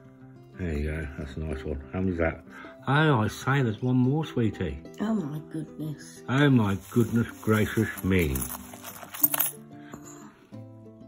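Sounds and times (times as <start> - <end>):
background music with sustained notes: 0.0 - 11.0
bubble wrap crinkling: 6.5 - 9.2
coins clinking: 6.6 - 10.3.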